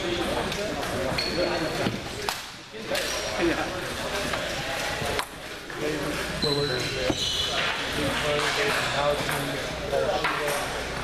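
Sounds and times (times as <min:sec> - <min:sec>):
background talk: 0:00.0 - 0:11.0.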